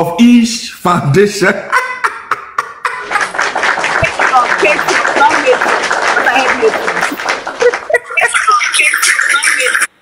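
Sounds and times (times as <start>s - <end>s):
crowd clapping: 2.8s - 9.9s.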